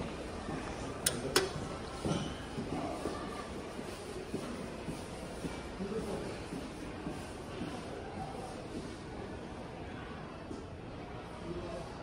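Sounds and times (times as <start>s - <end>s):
steady room noise: 0.0s - 12.0s.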